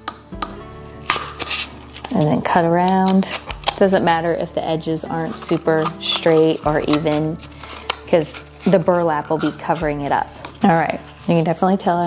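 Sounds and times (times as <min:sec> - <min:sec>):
soft background music: 0:00.0 - 0:12.0
scissors clicking on cardboard: 0:05.3 - 0:08.4.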